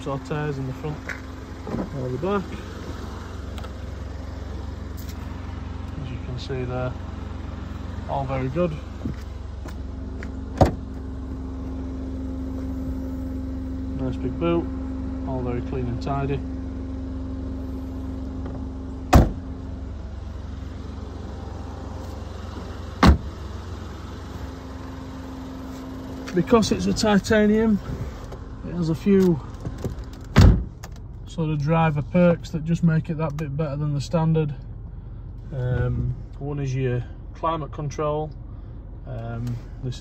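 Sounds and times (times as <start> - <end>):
car engine idling: 0.0 - 40.0
car doors slamming shut: 10.5 - 10.9, 18.4 - 19.5, 22.5 - 23.4, 29.6 - 31.0.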